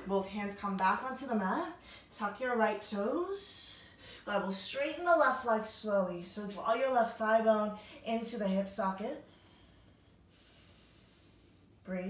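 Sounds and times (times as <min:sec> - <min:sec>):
person breathing softly: 0:09.2 - 0:11.8.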